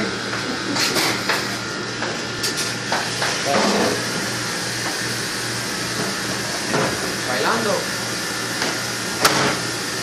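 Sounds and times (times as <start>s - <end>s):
machinery hum and hiss: 0.0s - 10.0s.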